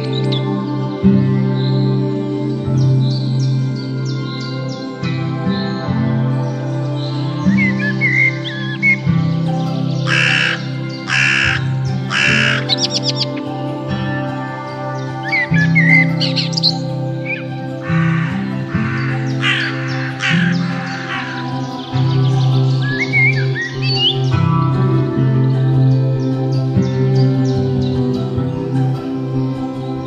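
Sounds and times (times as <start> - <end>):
background music: 0.0 - 30.0
small birds chirping: 0.0 - 30.0
crow cawing: 10.0 - 13.2, 17.8 - 22.0.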